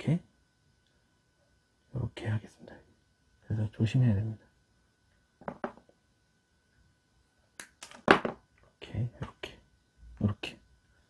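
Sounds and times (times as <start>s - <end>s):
plastic battery housing clicks and knocks: 5.4s - 5.8s.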